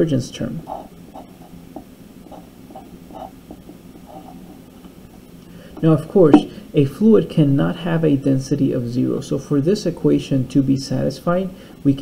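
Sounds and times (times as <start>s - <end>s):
steady low hum: 0.0s - 12.0s
marker writing on paper: 0.7s - 5.2s.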